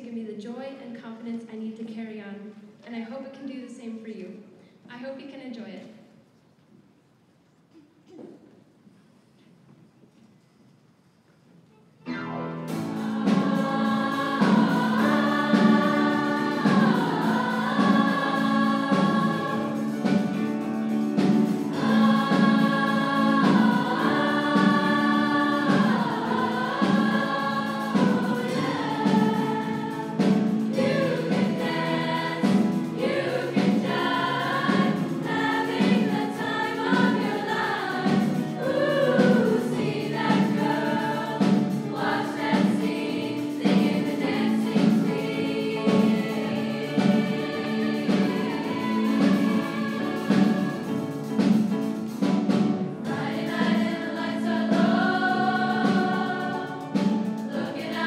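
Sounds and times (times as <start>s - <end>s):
piano bass and drums: 12.4s - 58.0s
female choir singing pop song: 12.8s - 20.5s, 21.6s - 51.1s, 53.1s - 58.0s.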